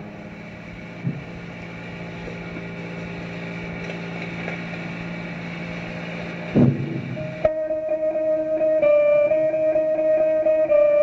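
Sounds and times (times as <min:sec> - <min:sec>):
cassette tape hiss: 0:00.0 - 0:11.0
low instrument drone: 0:00.0 - 0:11.0.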